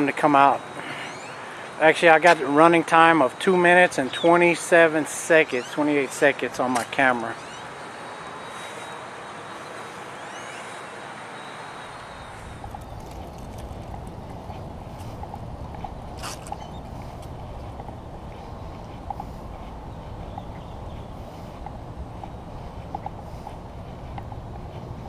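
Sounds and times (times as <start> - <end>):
outdoor background noise: 0.0 - 25.0.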